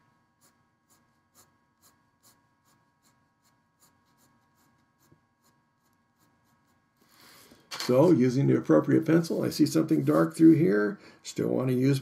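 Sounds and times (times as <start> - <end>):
pencil scratching on paper: 0.2 - 7.3.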